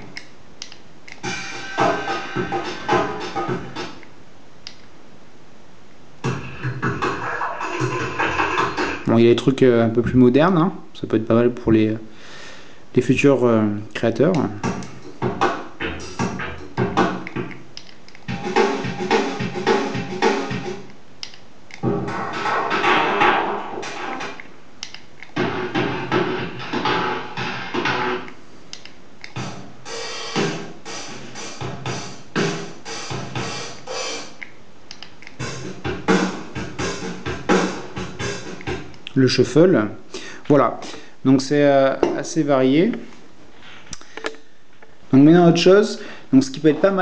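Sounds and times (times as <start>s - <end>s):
drum machine rhythms: 1.2s - 4.0s, 6.2s - 9.4s, 14.4s - 17.7s, 18.3s - 20.9s, 21.8s - 24.4s, 25.4s - 28.3s, 29.4s - 34.4s, 35.4s - 39.1s.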